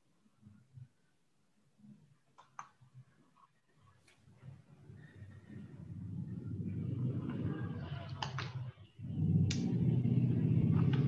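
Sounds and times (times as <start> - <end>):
low background rumble: 4.3 - 11.0.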